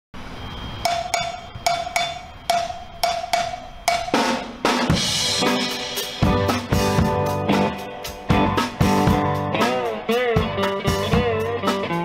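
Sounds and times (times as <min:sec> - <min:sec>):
cowbell strikes: 0:00.5 - 0:05.8.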